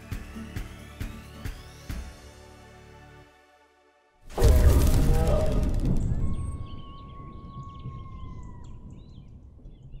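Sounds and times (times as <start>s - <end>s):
low rumble: 4.3s - 10.0s
bird chirps: 5.4s - 10.0s.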